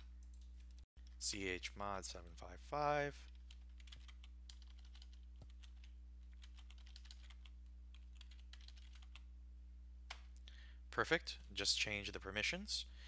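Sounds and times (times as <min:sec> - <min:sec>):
low electrical hum: 0:00.0 - 0:13.0
typing on computer keyboard: 0:03.3 - 0:09.2.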